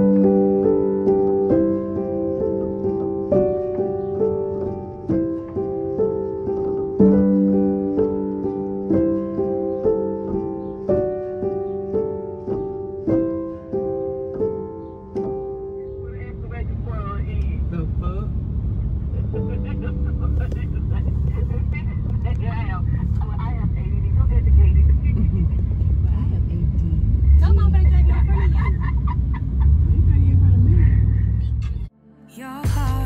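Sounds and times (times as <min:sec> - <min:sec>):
car engine and road rumble: 0:00.0 - 0:31.9.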